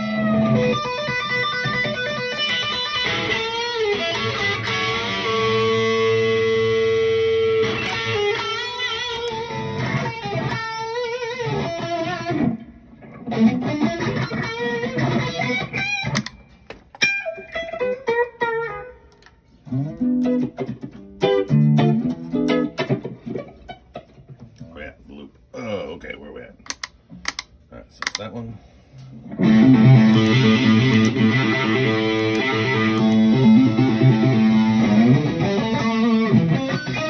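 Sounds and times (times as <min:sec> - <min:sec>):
electric guitar sustained notes: 0:00.0 - 0:16.3, 0:29.2 - 0:37.0.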